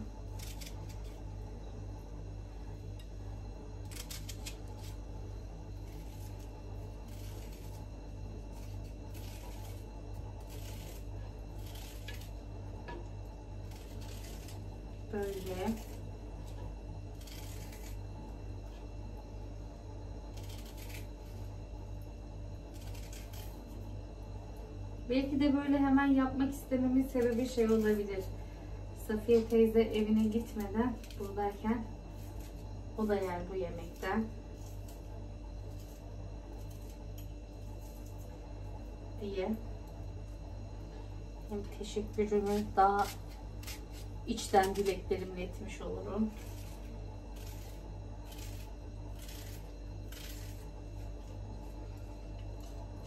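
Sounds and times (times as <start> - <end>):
knife cutting onion: 0.0 - 1.4, 2.8 - 19.3, 19.9 - 24.1, 26.8 - 28.4, 29.3 - 38.4, 41.6 - 53.0
low hum: 0.0 - 53.0.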